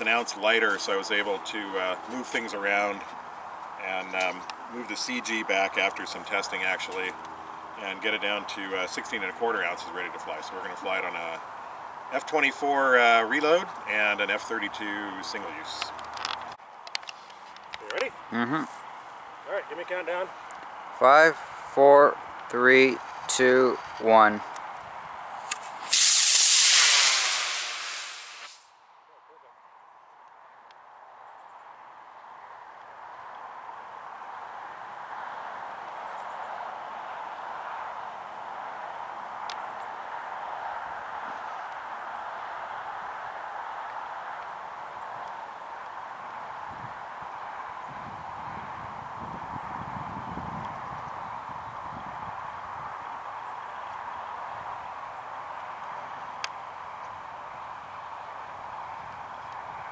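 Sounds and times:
faint background noise: 0:00.0 - 0:59.9
rocket motor rushing hiss: 0:25.3 - 0:28.8.

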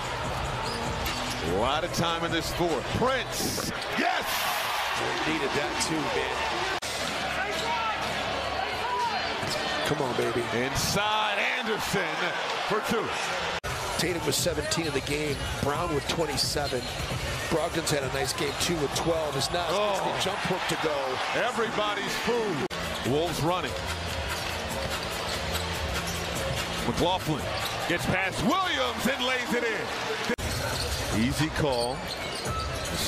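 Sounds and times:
arena crowd noise: 0:00.0 - 0:33.0.

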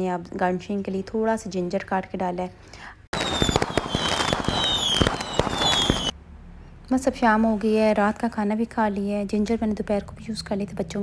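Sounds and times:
fireworks crackling and popping: 0:03.1 - 0:06.2
high whistles falling in pitch: 0:03.2 - 0:06.1.

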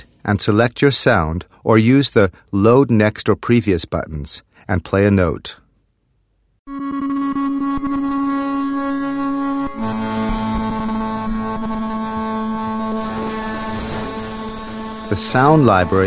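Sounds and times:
sustained noisy synth note: 0:06.7 - 0:16.0.

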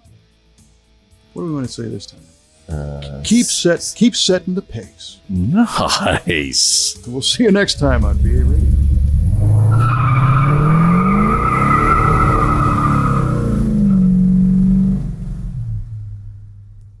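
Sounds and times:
car engine accelerating: 0:07.7 - 0:17.0
tires squealing: 0:07.8 - 0:15.8.

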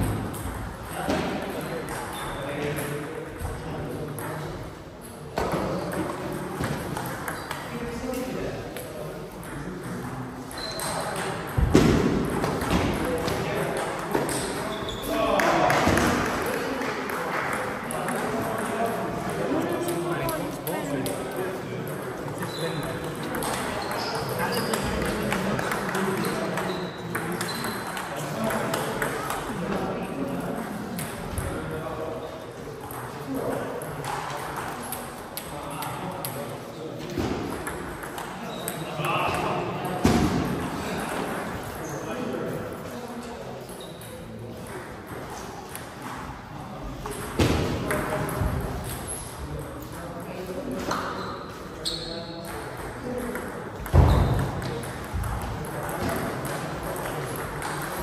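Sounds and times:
table tennis balls clicking: 0:52.4 - 0:58.0.

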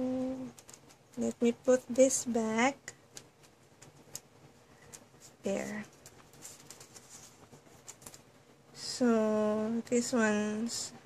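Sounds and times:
paper sticker roll rustling: 0:00.4 - 0:02.3, 0:03.1 - 0:08.3.

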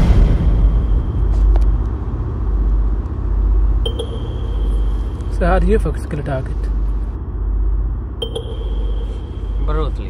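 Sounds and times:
thin high tone: 0:03.9 - 0:06.3, 0:08.2 - 0:10.0.

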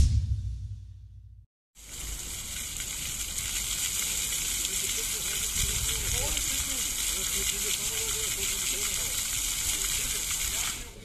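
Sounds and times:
fountain water jets spraying: 0:01.8 - 0:11.0.

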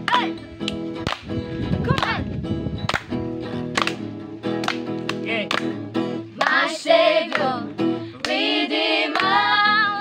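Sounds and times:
acoustic guitar strumming: 0:00.0 - 0:10.0
sharp slaps: 0:02.9 - 0:05.7.

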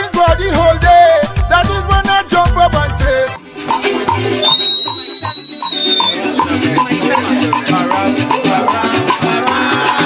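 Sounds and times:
strummed strings and maracas: 0:00.0 - 0:10.0
high steady tone: 0:03.7 - 0:07.6.

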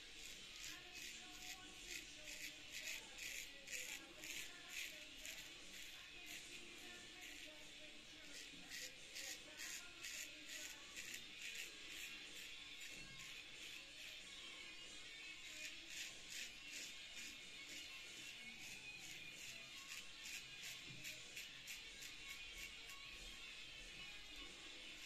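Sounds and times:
faint music: 0:00.0 - 0:25.0
razor scraping stubble: 0:00.0 - 0:25.0.

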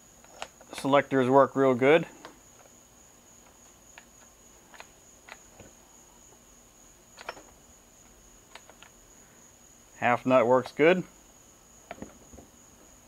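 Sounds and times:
steady high-pitched whine: 0:00.0 - 0:13.0
metallic lever clicks: 0:07.2 - 0:07.5.

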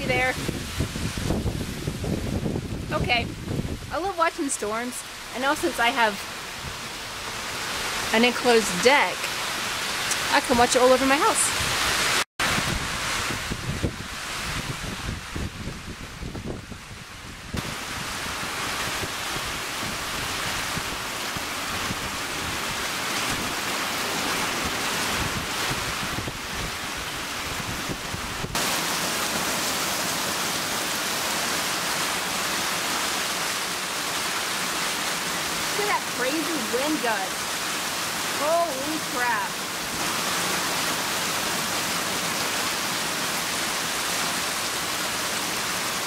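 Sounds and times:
wind buffeting microphone: 0:00.0 - 0:04.4, 0:10.4 - 0:28.7
heavy rain: 0:00.0 - 0:46.0.

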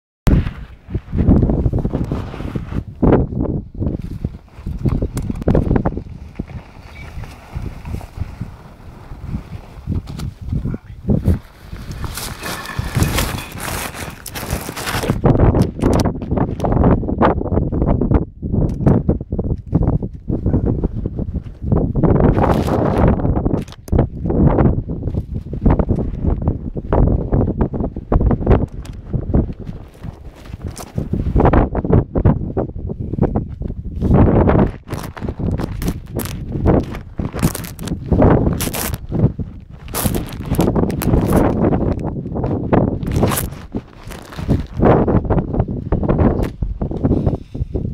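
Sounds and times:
wind buffeting microphone: 0:00.3 - 0:47.9
clothing rustling: 0:04.1 - 0:10.6, 0:11.3 - 0:15.2, 0:43.0 - 0:44.9.

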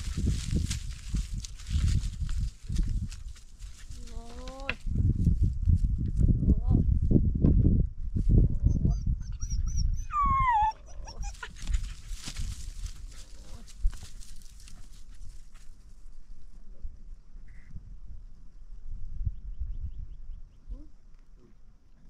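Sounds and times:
puppy whining: 0:08.7 - 0:11.9.

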